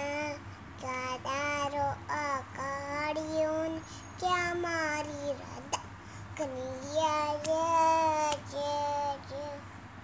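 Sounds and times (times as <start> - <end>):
girl singing unaccompanied: 0.0 - 9.8.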